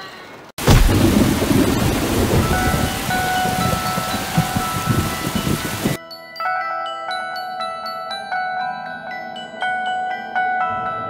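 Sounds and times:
heavy rain: 0.6s - 6.0s
thunder rumbling: 0.6s - 6.0s.

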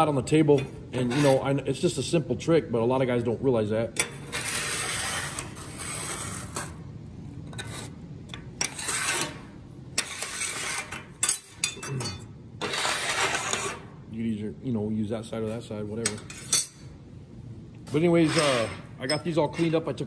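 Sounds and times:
metal square scraping steel table: 1.0s - 1.4s, 4.0s - 6.8s, 7.5s - 8.0s, 8.6s - 13.9s, 16.1s - 16.9s, 17.9s - 19.9s
man talking: 14.1s - 16.2s, 17.9s - 20.0s.

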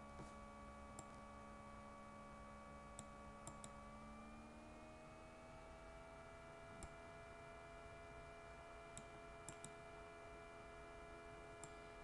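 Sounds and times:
faint electrical hum: 0.0s - 12.0s
computer mouse clicks: 0.9s - 1.2s, 2.9s - 3.8s, 6.7s - 7.0s, 8.9s - 9.8s, 11.6s - 11.9s.

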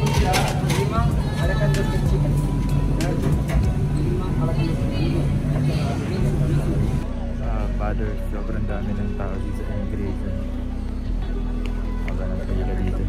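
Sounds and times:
indistinct voices: 0.0s - 13.0s.

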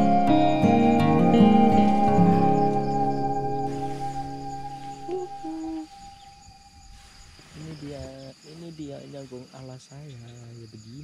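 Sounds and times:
background music: 0.0s - 6.0s
crickets trilling: 0.0s - 11.0s
man talking quietly: 7.6s - 11.0s.

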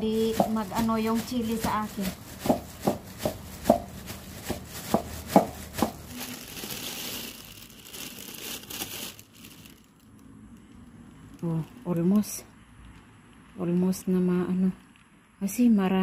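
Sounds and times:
plastic bag crinkling: 0.0s - 12.2s
stone pestle pounding in mortar: 2.4s - 3.9s, 4.5s - 6.0s.

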